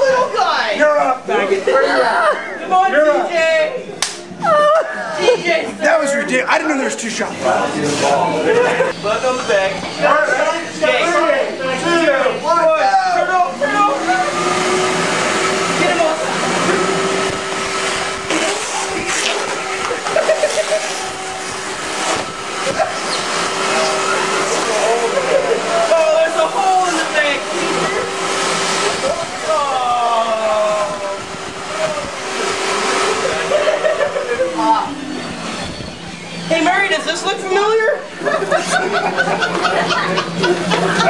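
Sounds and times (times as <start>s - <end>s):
shop vac motor whine: 0.0s - 41.0s.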